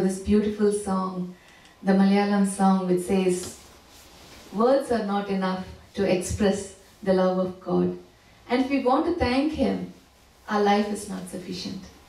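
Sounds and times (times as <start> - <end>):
woman talking into microphone: 0.0 - 3.5, 4.6 - 9.9, 10.5 - 11.9.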